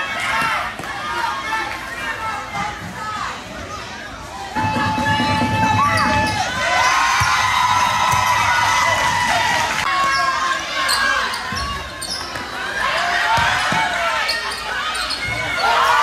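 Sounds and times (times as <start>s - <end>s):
crowd chatter in echoing gym: 0.0s - 16.0s
basketball bouncing on court: 4.6s - 8.6s.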